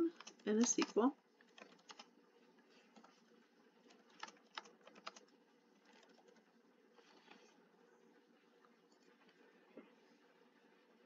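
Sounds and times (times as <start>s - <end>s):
keyboard typing clicks: 0.2s - 2.1s, 3.9s - 6.4s.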